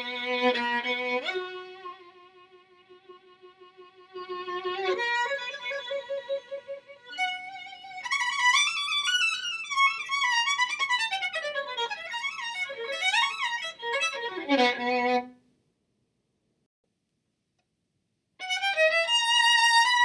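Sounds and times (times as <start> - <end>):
solo violin bowed: 0.0 - 15.3, 18.4 - 20.0.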